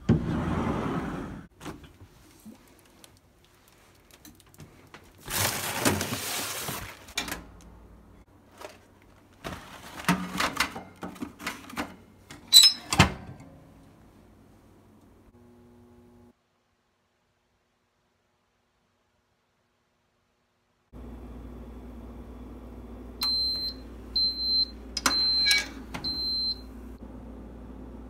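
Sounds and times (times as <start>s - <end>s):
packaging rustling: 2.5s - 7.2s
oven door and tray clattering: 9.6s - 13.5s.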